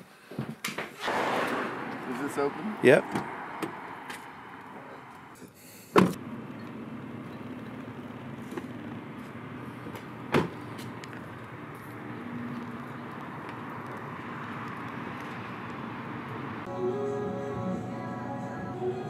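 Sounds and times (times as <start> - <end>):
car door slamming: 3.0 - 4.4, 5.9 - 6.2, 10.3 - 10.7.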